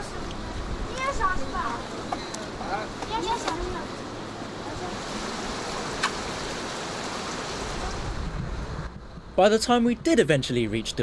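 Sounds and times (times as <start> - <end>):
wind buffeting microphone: 4.8 - 11.0.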